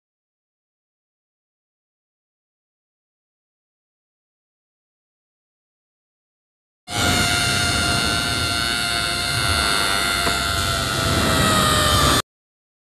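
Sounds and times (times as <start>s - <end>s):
harsh held tone: 6.9s - 12.2s.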